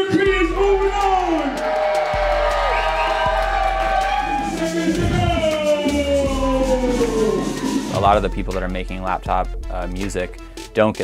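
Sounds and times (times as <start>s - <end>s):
crowd cheering: 0.0s - 8.2s
electronic music with sliding tones: 1.5s - 8.9s.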